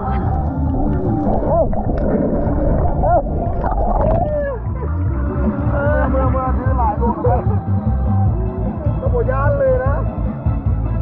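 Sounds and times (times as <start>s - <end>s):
underwater river rumble: 0.0s - 8.6s.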